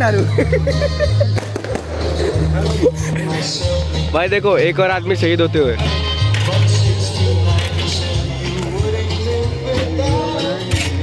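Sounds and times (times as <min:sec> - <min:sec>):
loud music with heavy bass: 0:00.0 - 0:11.0
fireworks cracking: 0:01.3 - 0:03.6.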